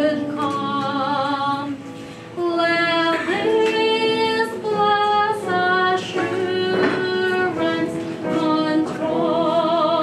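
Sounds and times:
woman singing: 0:00.0 - 0:10.0
breath: 0:01.9 - 0:02.4.

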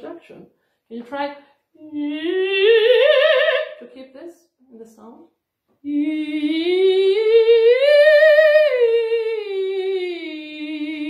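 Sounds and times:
woman singing vocal exercise: 0:01.7 - 0:04.1, 0:05.8 - 0:11.0.

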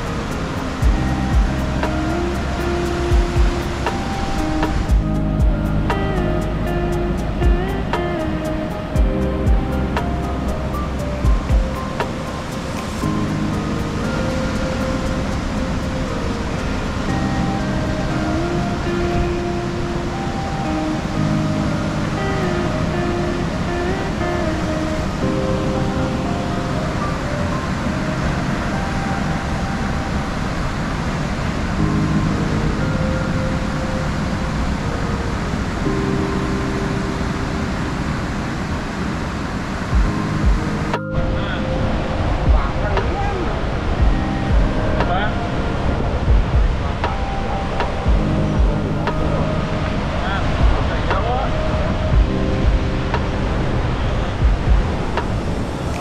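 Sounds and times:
background music slow melody: 0:00.0 - 0:56.0.

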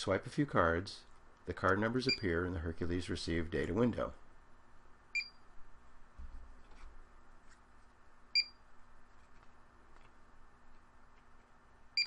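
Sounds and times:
card reader high beep: 0:05.2 - 0:05.4, 0:08.4 - 0:08.6.

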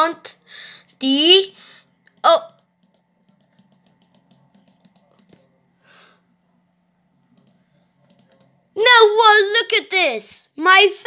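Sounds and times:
computer mouse clicking: 0:01.4 - 0:05.4, 0:07.2 - 0:08.6.

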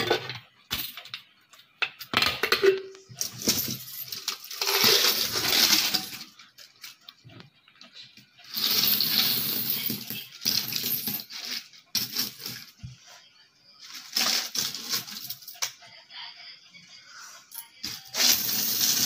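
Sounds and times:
coins pouring and jingling: 0:03.2 - 0:06.4, 0:08.4 - 0:12.8, 0:13.8 - 0:15.7, 0:17.8 - 0:19.0.

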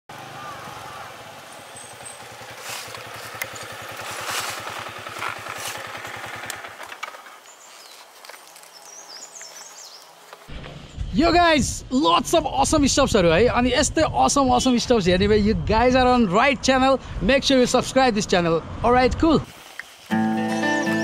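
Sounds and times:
motorcycle engine running: 0:00.1 - 0:08.3.

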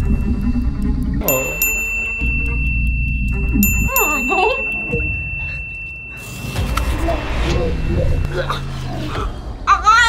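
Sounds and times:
thin steady high tone: 0:00.0 - 0:09.3.

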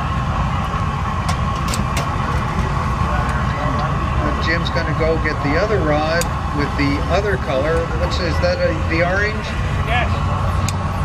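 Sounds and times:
furnace burner and blower rumbling: 0:00.0 - 0:11.0.

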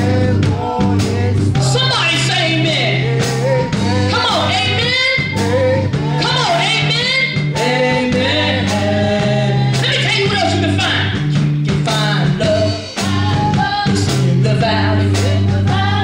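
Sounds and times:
woman singing gospel: 0:00.0 - 0:10.8, 0:11.8 - 0:16.0
instrumental accompaniment: 0:00.0 - 0:16.0.

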